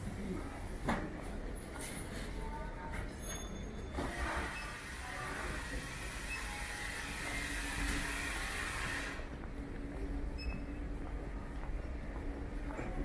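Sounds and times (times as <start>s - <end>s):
low hall hum: 0.0s - 13.0s.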